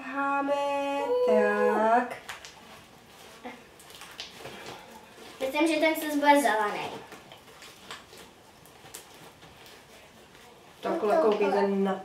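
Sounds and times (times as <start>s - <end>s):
slime clicking and squelching: 3.8s - 4.7s.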